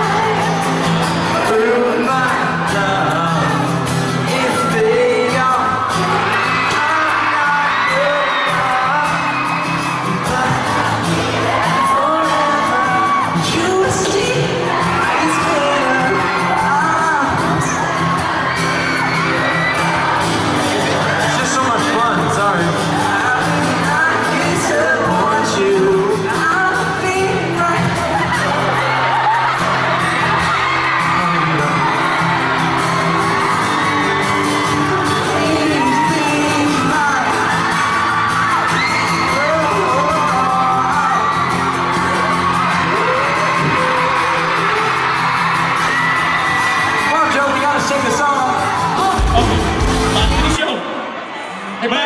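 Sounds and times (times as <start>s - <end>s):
acoustic guitar: 0.0s - 51.8s
lead singer singing: 0.0s - 51.8s
live pop-rock band: 0.0s - 51.8s
fans whooping: 0.0s - 52.0s.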